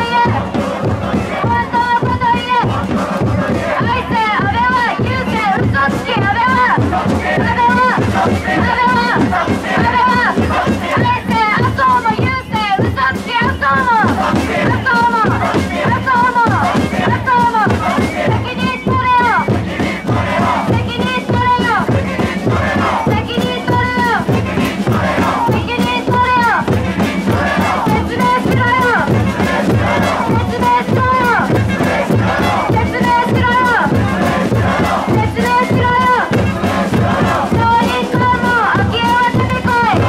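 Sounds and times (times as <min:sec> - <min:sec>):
woman shouting into microphone: 0:00.0 - 0:00.5, 0:01.3 - 0:02.8, 0:03.8 - 0:17.7, 0:18.3 - 0:19.5, 0:20.6 - 0:21.9, 0:23.1 - 0:24.3, 0:25.4 - 0:26.7, 0:27.8 - 0:29.1, 0:30.2 - 0:31.6, 0:32.4 - 0:33.9, 0:35.2 - 0:36.4, 0:37.6 - 0:40.0
crowd shouting back: 0:00.0 - 0:40.0
steady drum beat: 0:00.0 - 0:40.0.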